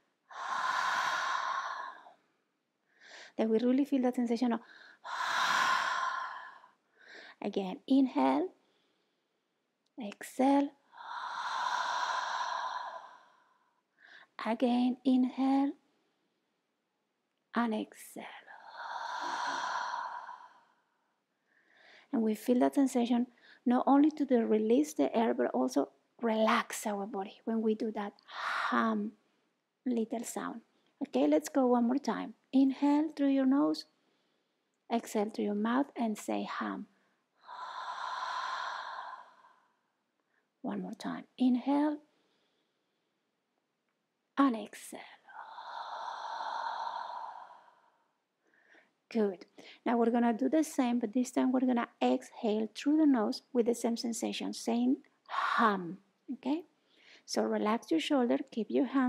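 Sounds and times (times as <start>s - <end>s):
woman exhaling breathily: 0.3s - 2.2s, 4.8s - 7.2s, 11.0s - 13.6s, 18.6s - 20.8s, 37.4s - 39.7s, 45.3s - 48.0s
woman's breathy sigh exhalation: 0.3s - 2.2s.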